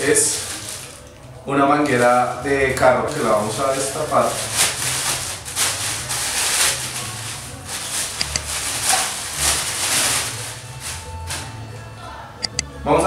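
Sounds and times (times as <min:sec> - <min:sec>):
plastic bag crinkling: 0:00.0 - 0:11.5.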